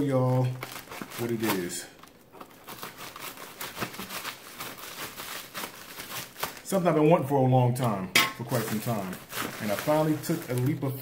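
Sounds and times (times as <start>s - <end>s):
plastic bag crinkling: 0.0s - 7.1s, 7.8s - 11.0s.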